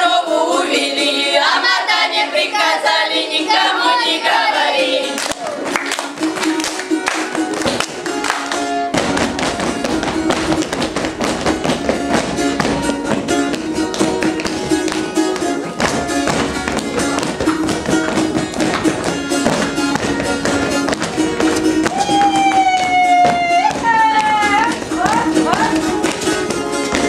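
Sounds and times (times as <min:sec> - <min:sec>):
strummed folk dance tune: 0:00.0 - 0:27.0
feet tapping and stamping: 0:05.7 - 0:27.0.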